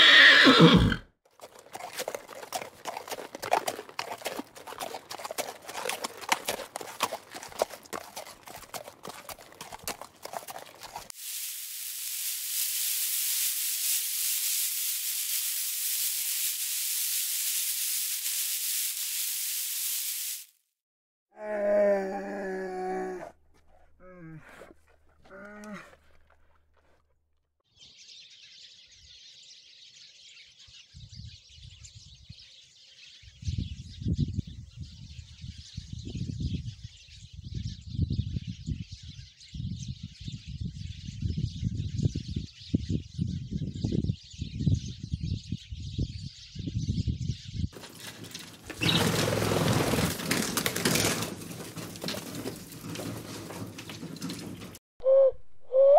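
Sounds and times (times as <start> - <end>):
wings fluttering: 1.4 - 20.5, 47.8 - 54.8
sparrows chirping: 27.7 - 49.2.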